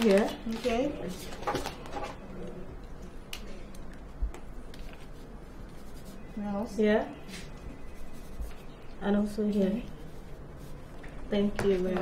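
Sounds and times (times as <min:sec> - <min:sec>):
pen scratching on paper: 0:07.8 - 0:08.8, 0:09.5 - 0:12.0.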